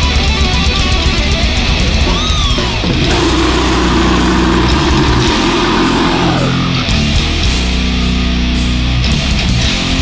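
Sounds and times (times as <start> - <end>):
bass: 0.0 - 10.0
distorted electric guitars: 0.0 - 10.0
drums: 0.0 - 10.0.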